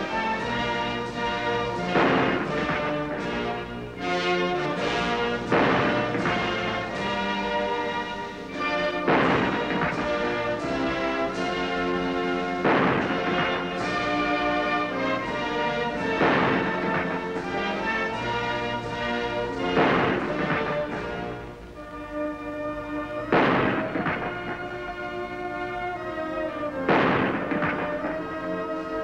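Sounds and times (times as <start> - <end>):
military brass band playing: 0.0 - 29.0
cannon shot: 0.8 - 21.5, 23.2 - 26.1, 26.7 - 28.6.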